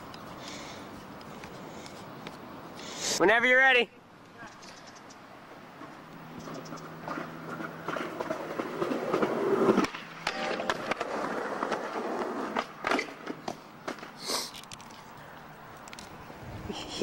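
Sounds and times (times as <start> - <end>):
skateboard wheels rolling on concrete: 0.0 - 17.0
skateboard scraping steel rail: 5.8 - 15.0.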